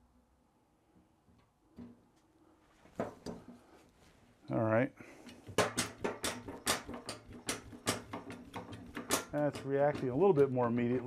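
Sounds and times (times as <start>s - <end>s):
hydraulic hand pump clicking: 6.3s - 10.5s.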